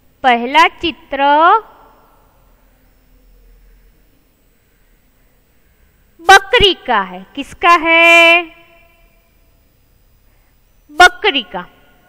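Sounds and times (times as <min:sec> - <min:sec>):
woman speaking: 0:00.2 - 0:02.4, 0:06.2 - 0:09.0, 0:10.9 - 0:11.9.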